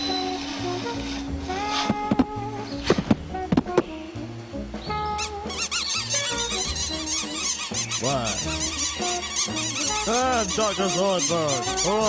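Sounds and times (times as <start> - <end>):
background music: 0.0 - 12.0
low swooping bird calls: 4.8 - 12.0
cartoon birds squawking: 5.2 - 12.0.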